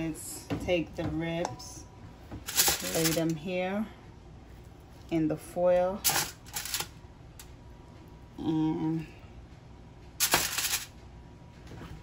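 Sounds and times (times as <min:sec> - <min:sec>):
aluminium foil crinkling: 0:02.5 - 0:03.3, 0:06.0 - 0:06.9, 0:10.2 - 0:10.9.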